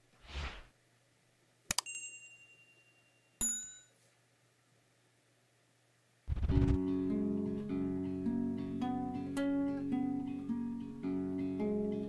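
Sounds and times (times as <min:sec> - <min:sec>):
bright ding: 0:01.8 - 0:04.0.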